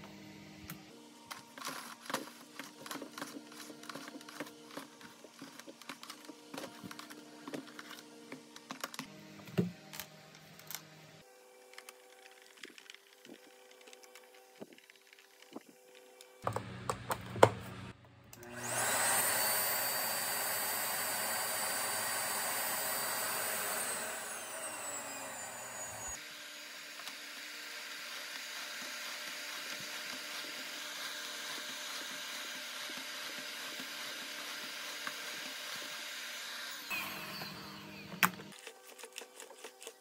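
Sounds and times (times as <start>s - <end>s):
vacuum cleaner motor whine: 15.5s - 38.8s.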